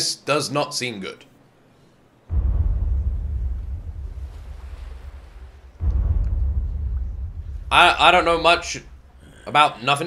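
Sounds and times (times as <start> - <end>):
deep low rumble: 2.3 - 9.5.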